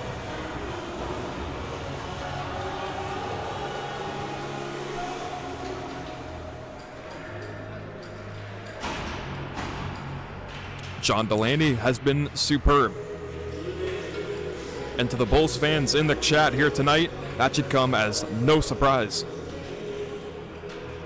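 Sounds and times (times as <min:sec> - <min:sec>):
faint music: 0:00.0 - 0:21.0.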